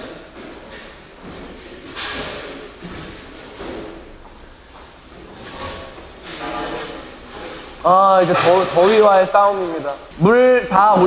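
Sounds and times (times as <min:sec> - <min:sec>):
noisy scrape: 0:00.0 - 0:11.0.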